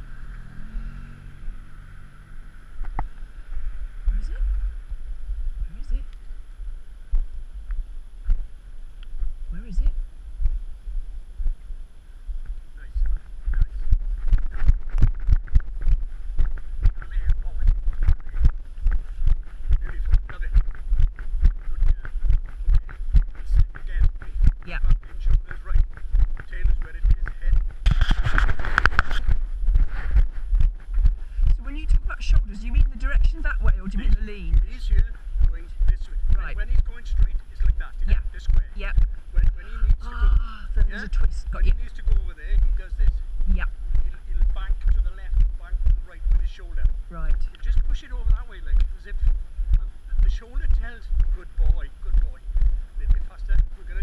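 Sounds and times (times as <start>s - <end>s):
car engine running: 0.0s - 54.0s
wind on microphone: 0.0s - 54.0s
footsteps: 2.8s - 54.0s.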